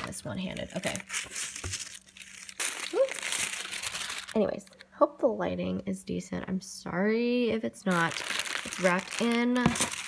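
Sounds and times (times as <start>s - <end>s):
tissue paper crinkling: 0.4s - 4.4s, 7.9s - 10.0s.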